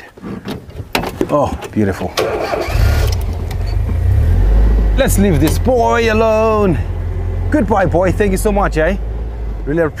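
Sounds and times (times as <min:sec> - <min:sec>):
vehicle engine starting: 0:02.0 - 0:10.0.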